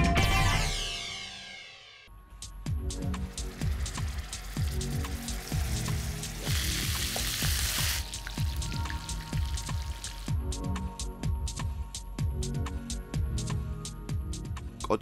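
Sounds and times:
music with kick-drum beat: 2.4s - 15.0s
meat patties sizzling in oil: 3.2s - 10.4s.

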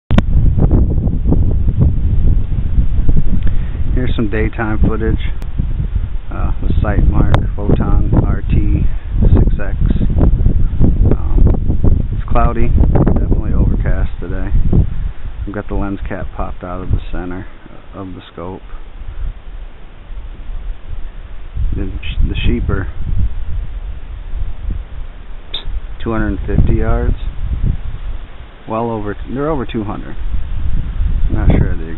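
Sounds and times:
wind buffeting microphone: 0.1s - 31.9s
sharp click: 25.5s - 25.8s.

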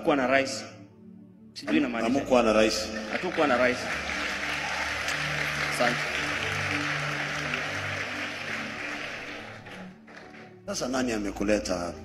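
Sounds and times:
music with held low notes: 0.0s - 12.0s
congregation applauding: 2.0s - 11.1s.

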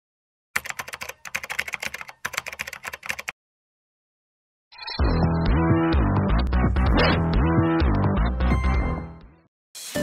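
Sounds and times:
computer keyboard typing: 0.6s - 3.4s.

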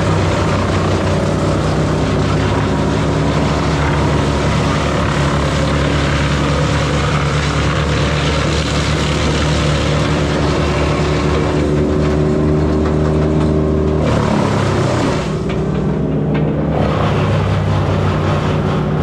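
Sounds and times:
machine engine under hydraulic load: 0.1s - 19.0s.

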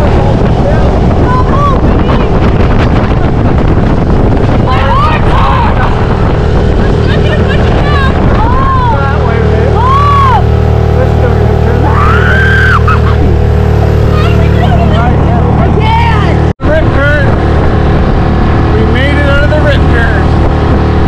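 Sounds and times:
outboard motor running: 0.0s - 21.0s
voices: 4.6s - 13.4s, 14.0s - 17.3s.

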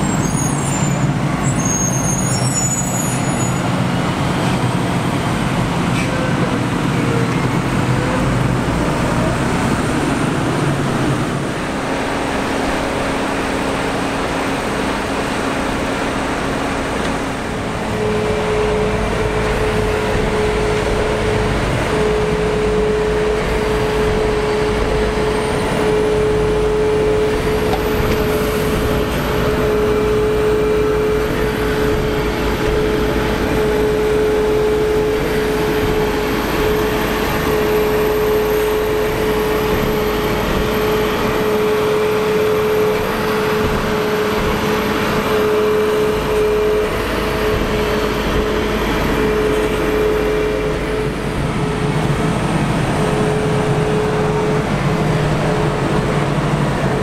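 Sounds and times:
heavy diesel engines under load: 0.0s - 57.0s
steady whine: 9.6s - 57.0s.

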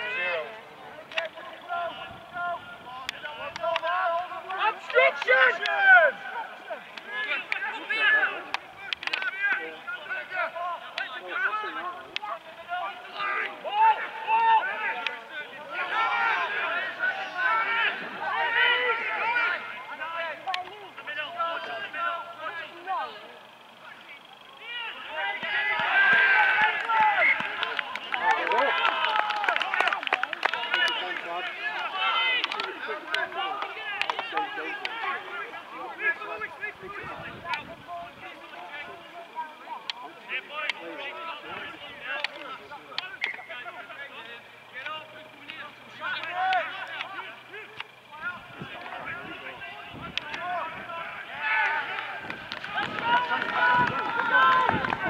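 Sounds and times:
players and spectators shouting: 0.0s - 55.0s.

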